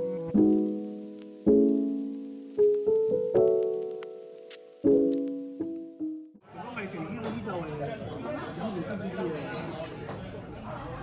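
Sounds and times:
people chattering: 6.4 - 11.0.

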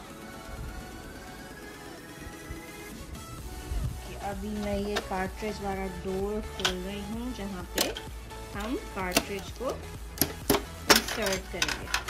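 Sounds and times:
plastic clicks and rattles: 7.7 - 12.0.

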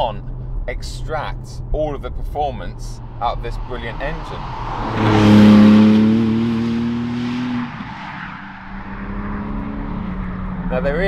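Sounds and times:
faint road and wind noise: 0.0 - 11.0
car engine driving away: 0.2 - 11.0.

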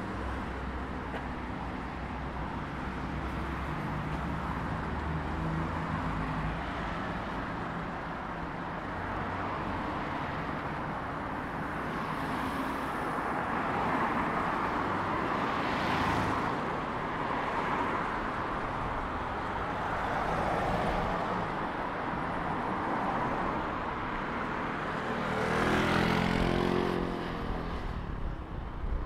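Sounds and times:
cars passing on road: 0.0 - 29.0.

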